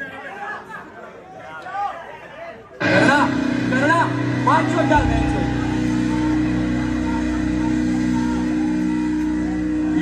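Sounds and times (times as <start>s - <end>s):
droning electric guitar and bass chord: 2.8s - 10.0s.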